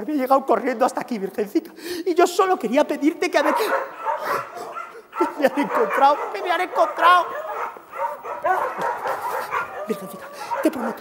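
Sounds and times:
man crying out and whimpering: 0:09.6 - 0:11.0.

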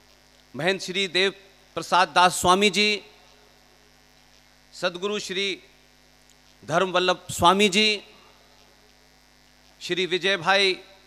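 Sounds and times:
faint electrical hum: 0:00.0 - 0:11.0
man speaking: 0:00.6 - 0:03.2, 0:04.8 - 0:05.7, 0:06.6 - 0:08.2, 0:09.8 - 0:11.0.

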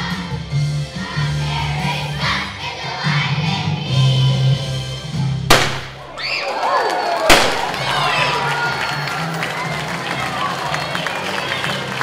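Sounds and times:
music: 0:00.0 - 0:05.9, 0:07.7 - 0:12.0
confetti cannon bang: 0:05.5 - 0:06.2, 0:07.3 - 0:07.9.

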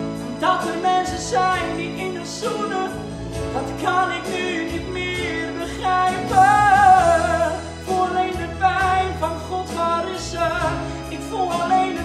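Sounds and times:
low instrumental accompaniment: 0:00.0 - 0:12.0
man singing a pop ballad: 0:00.0 - 0:12.0.

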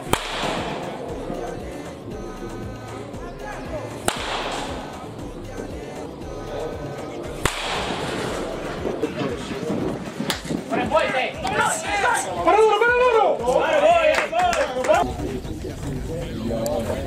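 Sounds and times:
baseball bat cracking ball: 0:00.0 - 0:01.0, 0:04.0 - 0:05.0, 0:07.4 - 0:08.4
background music: 0:00.0 - 0:17.0
voices: 0:00.0 - 0:17.0.

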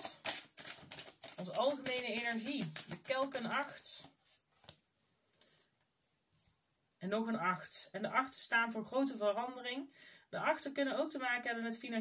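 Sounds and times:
card rustle: 0:00.0 - 0:04.8.

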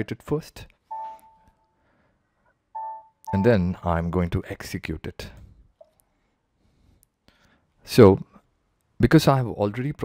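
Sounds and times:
electronic notification chime: 0:00.9 - 0:01.4, 0:02.8 - 0:03.6.

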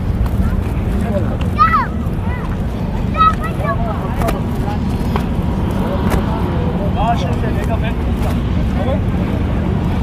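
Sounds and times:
people talking nearby: 0:00.0 - 0:10.0
wind rumble on microphone: 0:00.0 - 0:10.0.

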